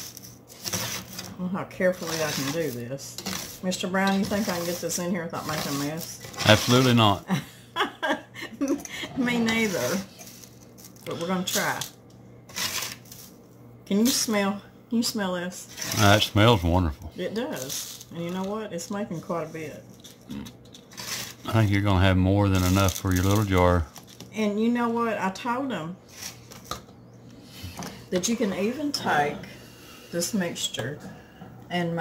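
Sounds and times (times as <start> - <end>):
metal spatula scraping a sheet pan: 1.8 - 7.0, 9.2 - 10.4, 12.5 - 13.1
salt rustling in a funnel: 2.0 - 7.2, 21.0 - 23.8.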